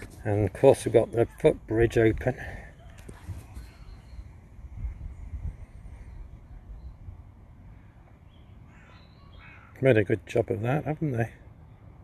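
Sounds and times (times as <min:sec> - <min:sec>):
faint bird call: 0:02.5 - 0:07.0, 0:07.6 - 0:09.8.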